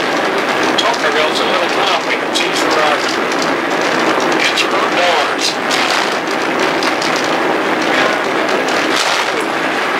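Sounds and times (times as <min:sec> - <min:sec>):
car cabin noise: 0:00.0 - 0:09.9
crackly tape hiss: 0:00.0 - 0:09.9.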